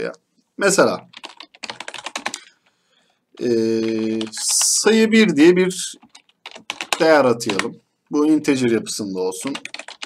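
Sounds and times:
keyboard typing: 1.1s - 2.5s, 3.4s - 5.0s, 5.9s - 7.8s, 9.4s - 10.0s.

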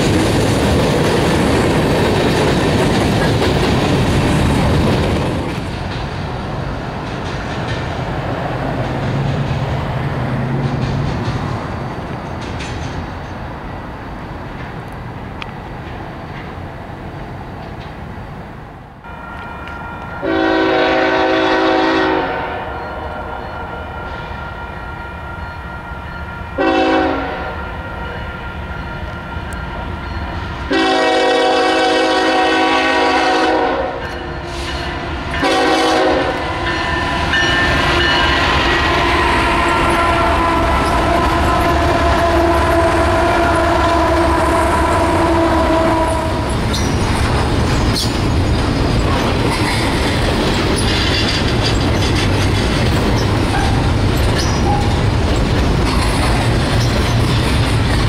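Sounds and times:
train wheels clacking on rails: 0.0s - 18.0s, 28.8s - 58.0s
diesel locomotives rumbling past: 0.0s - 58.0s
locomotive air horn blasts: 19.1s - 29.3s, 30.7s - 34.1s, 34.9s - 46.5s.

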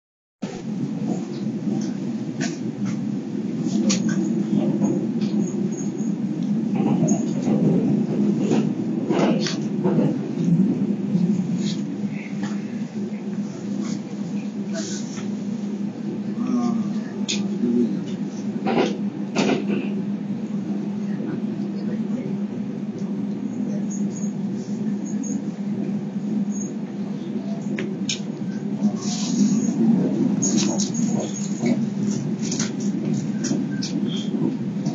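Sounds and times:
train cabin rumble: 0.4s - 34.9s.

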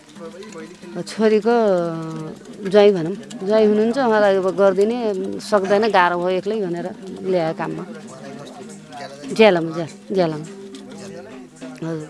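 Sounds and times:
woman speaking: 1.0s - 8.1s, 9.2s - 10.5s.

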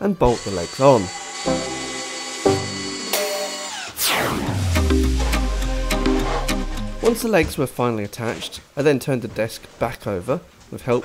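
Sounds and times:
background music: 0.0s - 7.7s
power drill whining: 0.3s - 4.0s.

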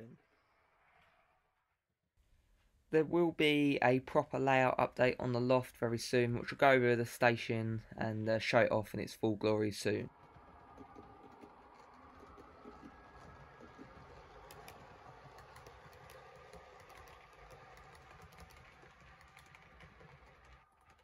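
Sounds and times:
model train wheels clicking: 10.2s - 21.0s.

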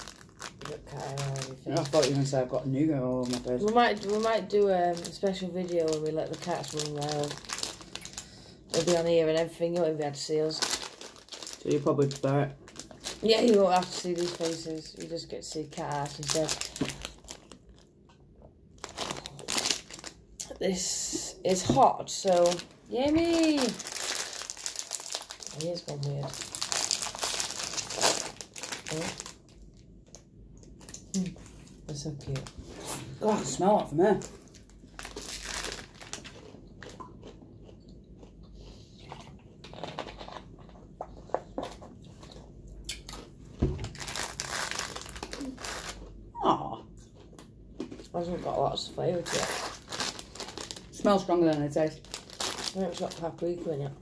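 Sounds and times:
sharp packet crackle: 0.0s - 17.9s, 18.8s - 20.5s, 21.5s - 30.2s, 34.0s - 36.4s, 43.8s - 46.1s, 49.2s - 53.6s
snack packet crunching and crinkling: 0.0s - 18.0s, 18.7s - 20.6s, 21.5s - 46.2s, 47.1s - 54.0s
crunchy snack chewing: 35.0s - 43.3s.

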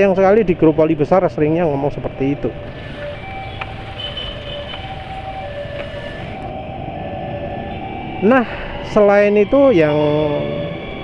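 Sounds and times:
traffic: 0.0s - 11.0s
faint whines: 2.5s - 9.0s
scooter engine: 2.6s - 6.7s.

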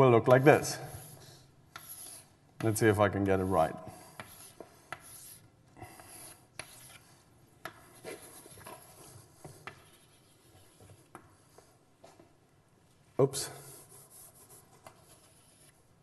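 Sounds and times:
chalk scratching on blackboard: 0.2s - 2.7s, 3.8s - 11.8s, 13.4s - 16.0s
chalk tapping on board: 0.2s - 2.8s, 3.9s - 5.4s, 6.1s - 7.0s, 7.6s - 11.7s.

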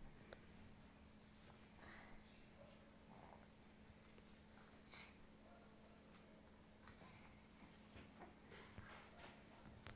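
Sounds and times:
faint steady hum: 0.0s - 9.9s.

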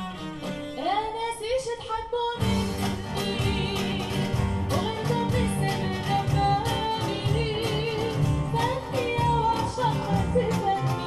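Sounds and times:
woman singing: 0.7s - 11.0s
plucked acoustic guitar: 2.4s - 11.0s.

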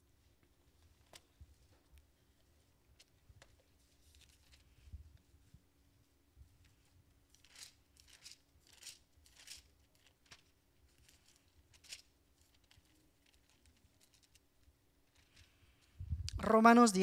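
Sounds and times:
book pages turning: 3.0s - 4.8s, 7.3s - 14.4s.

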